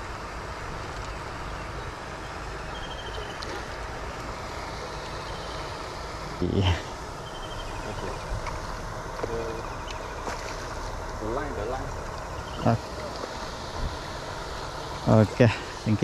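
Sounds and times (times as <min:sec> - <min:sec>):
steady background hiss: 0:00.0 - 0:16.0
fish splashing in water: 0:08.3 - 0:15.1.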